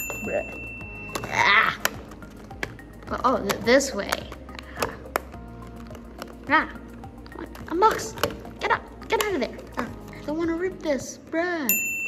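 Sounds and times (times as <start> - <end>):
faint background music: 0.0 - 12.0
plastic case clicking: 1.0 - 6.5, 7.2 - 10.2.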